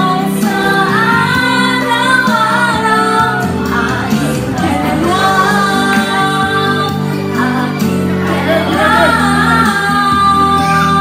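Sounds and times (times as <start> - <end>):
woman singing into a microphone: 0.0 - 11.0
women and children singing along: 0.0 - 11.0.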